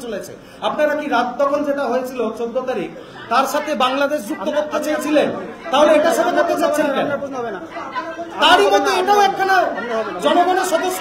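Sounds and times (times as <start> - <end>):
man talking into microphones: 0.0 - 11.0.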